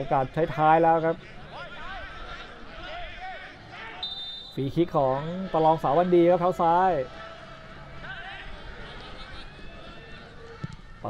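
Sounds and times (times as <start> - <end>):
distant voices shouting: 1.1 - 11.0.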